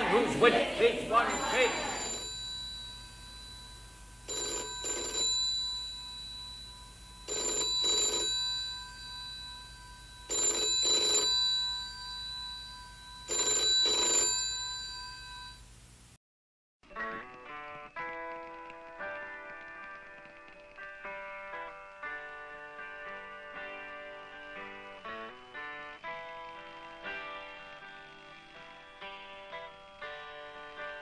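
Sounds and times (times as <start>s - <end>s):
telephone double ring: 1.3s - 15.6s.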